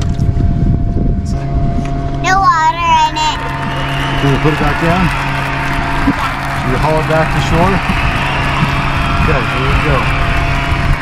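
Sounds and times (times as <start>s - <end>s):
wind buffeting microphone: 0.0s - 11.0s
motorboat idling: 1.9s - 11.0s.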